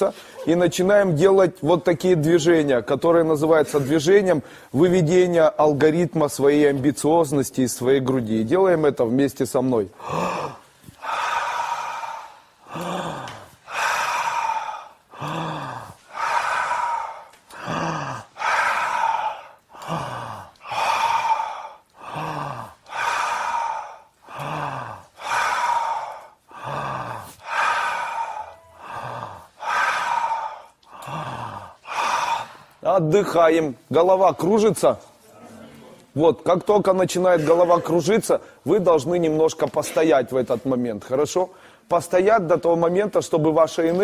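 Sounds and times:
group forced breathing: 0:09.9 - 0:32.8, 0:41.5 - 0:41.9
voiced grunts: 0:10.0 - 0:32.6.

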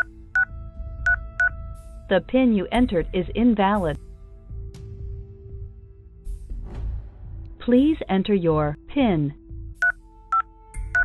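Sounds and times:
touch-tone keypad beeps: 0:00.0 - 0:00.5, 0:09.8 - 0:11.0.

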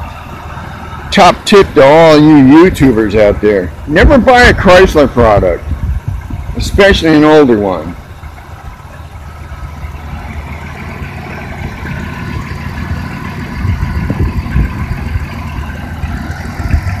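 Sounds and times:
car engine idling: 0:00.0 - 0:17.0
irregular low bumps: 0:05.4 - 0:07.1, 0:07.9 - 0:17.0.

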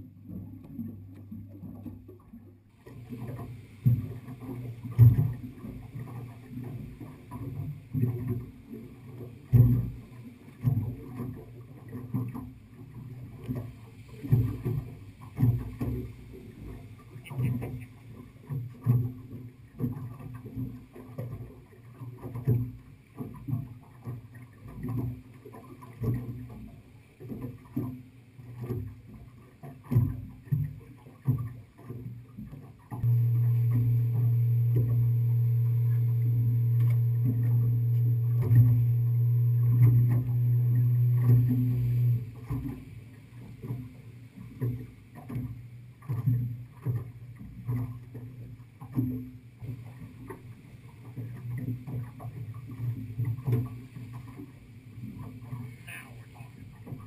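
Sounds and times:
low motor hum: 0:00.0 - 0:57.0
waves slapping boat hull: 0:00.0 - 0:57.0.

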